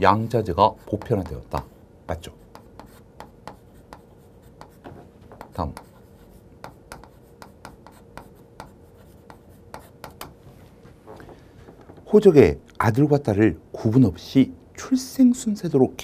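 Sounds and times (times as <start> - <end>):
chalk scratching on chalkboard: 0.7 - 10.4.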